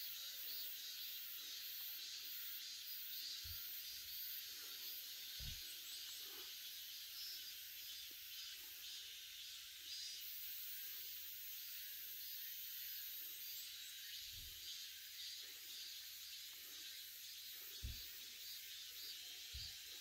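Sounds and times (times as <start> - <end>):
high-pitched insect buzzing: 0.0 - 20.0.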